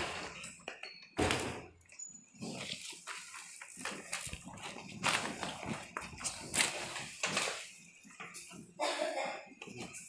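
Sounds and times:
plastic bag rustling: 2.4s - 8.7s.

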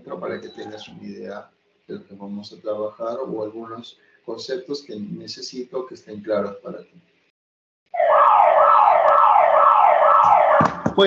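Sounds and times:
siren-like wail: 7.9s - 11.0s.

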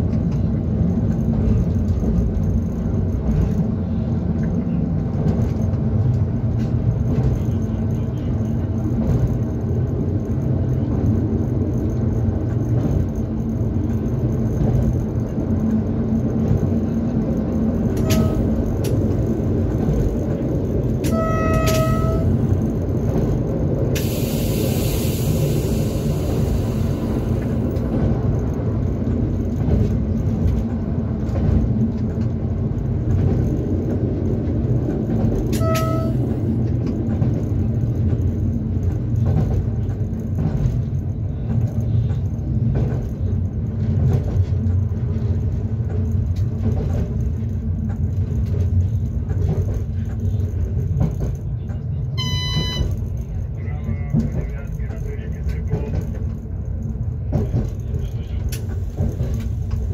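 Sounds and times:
train wheels rumbling: 0.0s - 59.9s
short beeping tones: 18.0s - 18.6s, 21.1s - 22.5s, 35.6s - 36.3s, 52.2s - 53.0s
air hissing: 24.0s - 27.6s.

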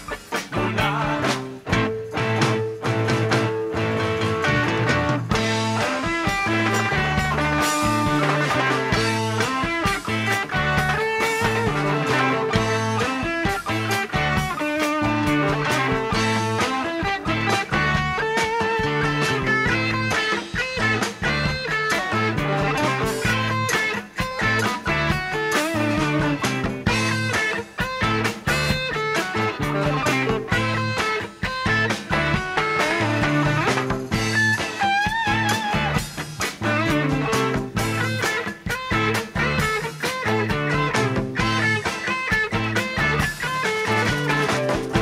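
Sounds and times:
electric guitar lead line: 0.0s - 45.0s
latin rock band playing: 0.0s - 45.0s.

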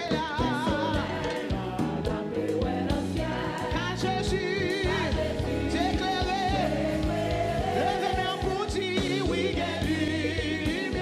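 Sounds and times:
live band with drum beat: 0.0s - 11.0s
woman singing gospel song: 0.0s - 11.0s.

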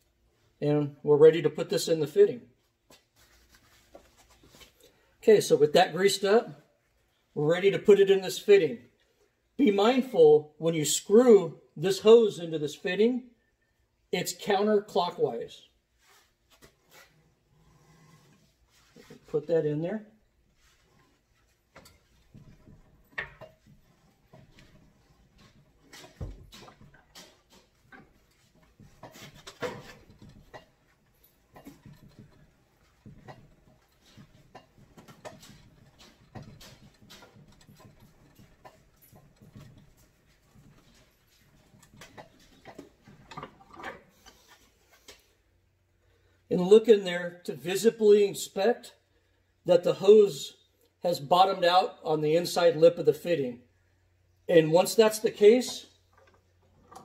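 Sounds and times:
hose scraping and rubbing: 14.9s - 45.3s.

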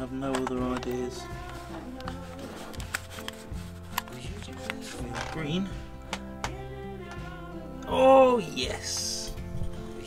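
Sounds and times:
background music sustained tones: 0.0s - 10.0s.

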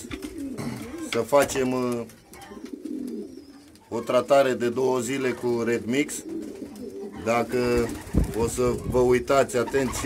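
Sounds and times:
pigeons cooing: 0.0s - 10.0s.

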